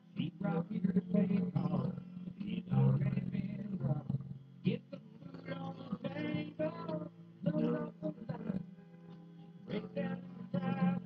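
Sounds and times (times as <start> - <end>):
recorded country song: 0.2 - 11.0.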